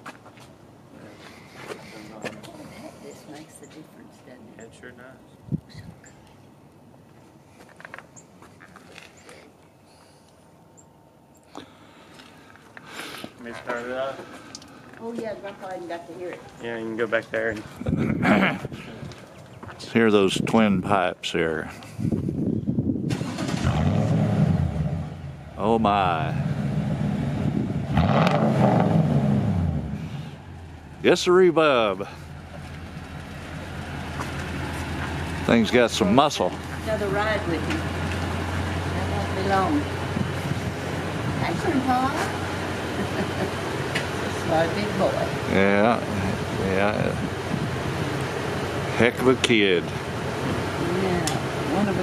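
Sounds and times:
low steady background noise: 0:00.0 - 0:52.0
truck engine starting and running: 0:21.6 - 0:52.0.

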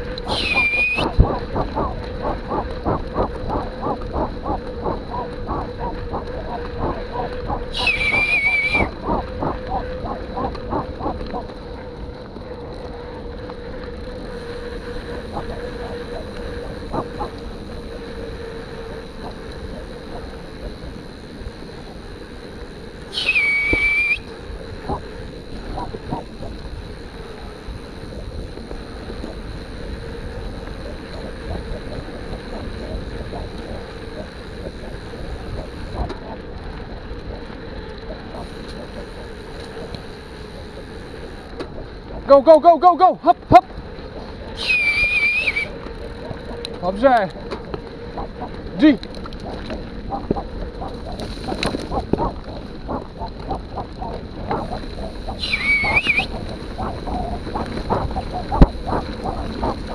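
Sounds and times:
wind on microphone: 0:00.0 - 0:22.1, 0:23.1 - 0:37.6, 0:43.8 - 0:59.9
bike tyres on gravel: 0:00.0 - 0:59.9
loud high squeal: 0:00.3 - 0:01.1, 0:07.8 - 0:08.9, 0:44.6 - 0:45.7.

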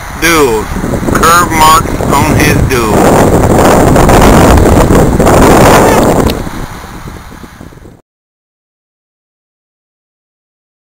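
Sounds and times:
wind buffeting microphone: 0:00.0 - 0:08.0.

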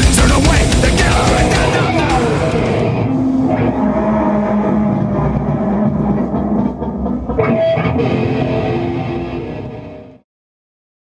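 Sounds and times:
drums and cymbals: 0:00.0 - 0:02.9
distorted guitar and bass drone: 0:00.0 - 0:10.2.

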